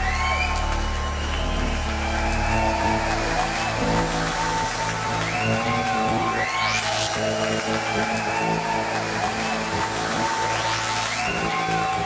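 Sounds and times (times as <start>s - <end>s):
synth-pop music: 0.0s - 12.0s.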